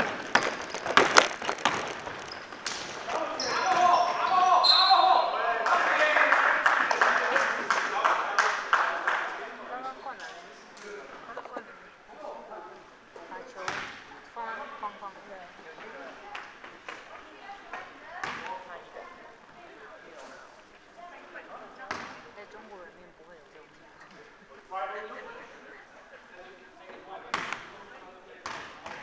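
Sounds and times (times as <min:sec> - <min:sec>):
basketball bouncing on hall floor: 0:00.0 - 0:04.3, 0:13.7 - 0:14.0, 0:17.7 - 0:18.6, 0:27.3 - 0:27.7, 0:28.4 - 0:29.0.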